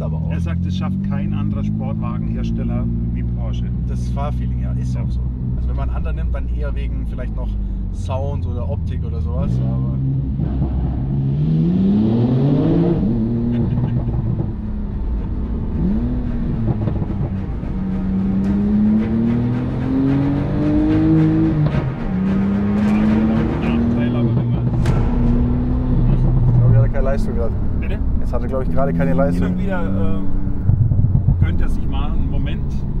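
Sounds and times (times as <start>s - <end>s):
car engine accelerating: 0.0s - 33.0s.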